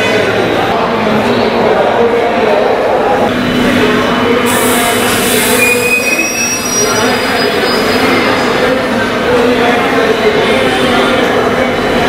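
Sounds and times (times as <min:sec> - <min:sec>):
high-pitched wheel squeals: 0:05.3 - 0:08.7.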